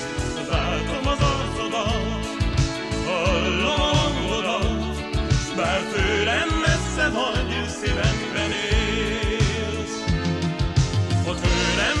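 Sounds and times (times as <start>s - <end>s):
pop song with steady beat: 0.0s - 12.0s.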